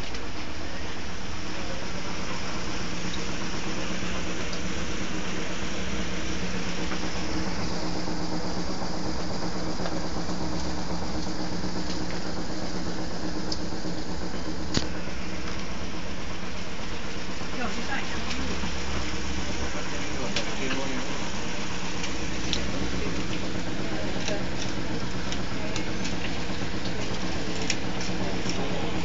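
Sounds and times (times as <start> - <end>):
background hum and drone: 0.0 - 29.0
indistinct voices: 17.0 - 29.0.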